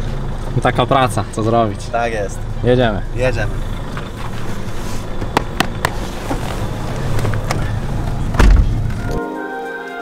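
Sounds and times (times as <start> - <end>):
car engine idling: 0.0 - 9.2
car door shutting: 3.8 - 9.2.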